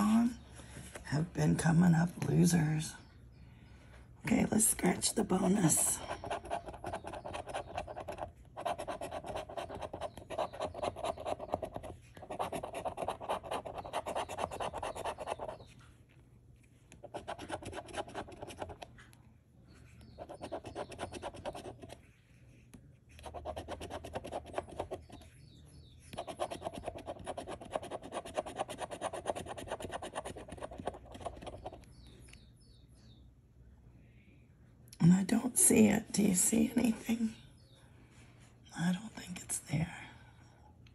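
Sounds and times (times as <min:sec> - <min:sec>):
coin scratching lottery ticket: 0:06.1 - 0:15.6, 0:26.1 - 0:31.7.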